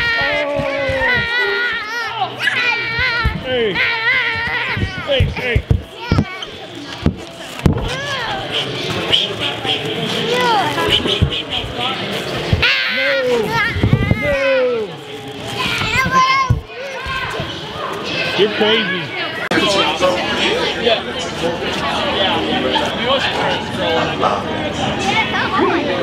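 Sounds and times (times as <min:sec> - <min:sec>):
children shouting and squealing: 0:00.0 - 0:21.0
sharp knocks: 0:00.2 - 0:01.6, 0:04.8 - 0:06.3.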